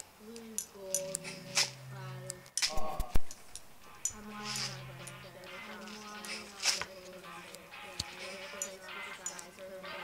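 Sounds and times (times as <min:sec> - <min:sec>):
low buzzing hum: 0:00.0 - 0:06.2
scattered clicks: 0:07.5 - 0:09.7.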